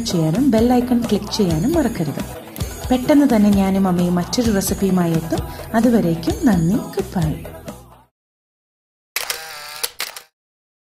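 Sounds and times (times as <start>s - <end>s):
camera whirr: 9.2s - 10.3s
camera shutter clicks: 9.2s - 10.4s.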